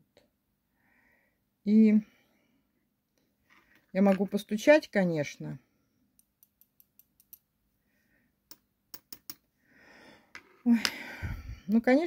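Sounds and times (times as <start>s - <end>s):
tapping on earrings: 6.2s - 7.5s, 8.5s - 9.5s.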